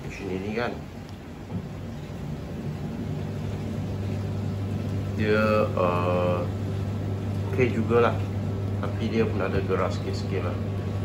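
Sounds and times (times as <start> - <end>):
washing machine spinning hum: 0.0 - 11.0.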